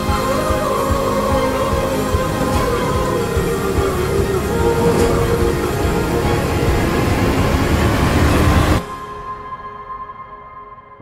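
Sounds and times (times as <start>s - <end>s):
loud trailer score: 0.0s - 9.8s
low rumbling noise: 0.0s - 10.1s.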